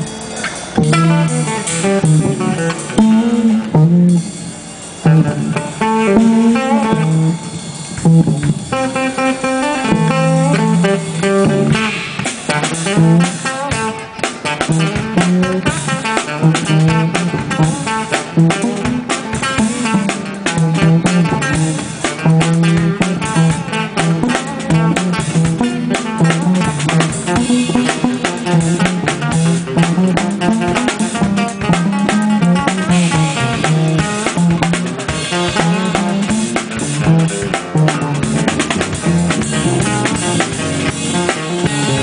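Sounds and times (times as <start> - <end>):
bass line: 0.0 - 42.0
busy drum kit: 0.0 - 42.0
guitar: 0.0 - 42.0.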